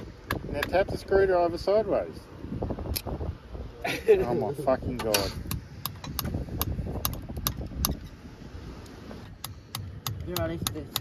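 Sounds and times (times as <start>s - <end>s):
hammer tapping metal: 9.4s - 11.0s.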